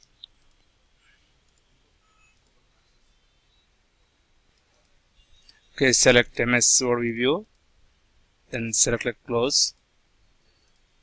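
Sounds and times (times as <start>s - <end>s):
faint mouse clicks: 0.0s - 0.7s, 1.4s - 1.7s, 10.6s - 10.9s.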